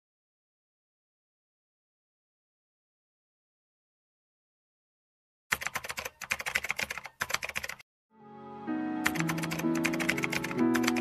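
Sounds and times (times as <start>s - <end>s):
keyboard typing clicks: 5.5s - 7.8s, 9.0s - 11.0s
soft slow music: 8.1s - 11.0s.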